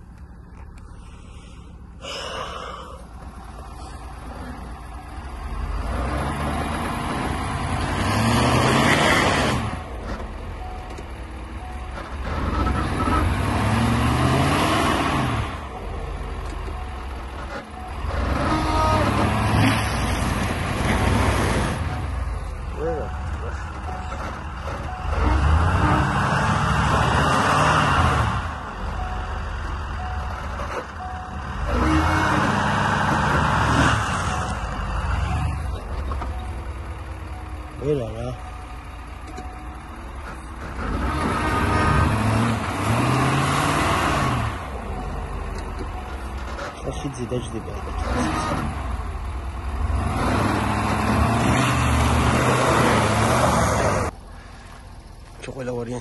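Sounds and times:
truck engine revving: 0.0s - 56.0s.

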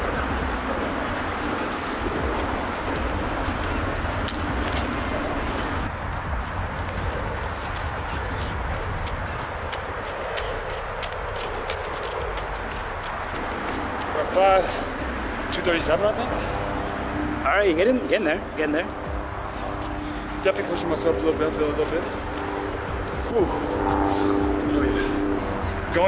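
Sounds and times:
footsteps on rubber track: 0.0s - 26.0s.

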